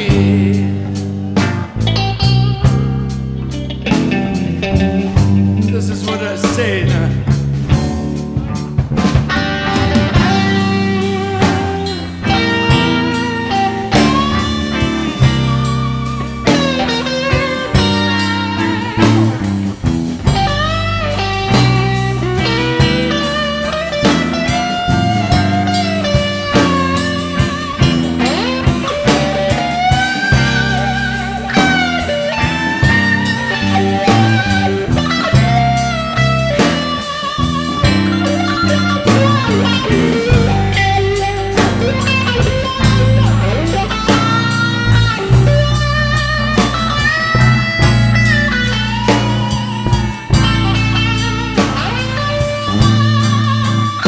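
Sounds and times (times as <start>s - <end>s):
electric guitar lead with bent notes: 0.0s - 54.0s
live blues band playing: 0.0s - 54.0s.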